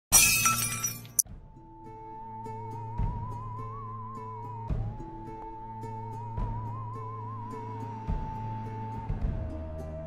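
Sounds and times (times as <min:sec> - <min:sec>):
glassy crash: 0:00.1 - 0:01.2.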